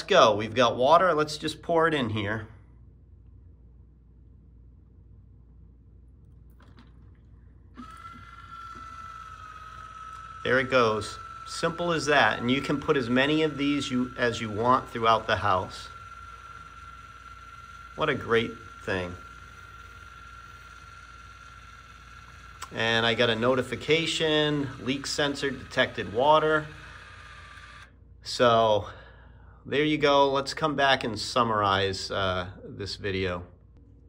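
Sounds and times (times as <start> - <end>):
valve motor humming with high whine: 7.6 - 28.9
high-pitched electronic alarm tone: 7.8 - 19.5.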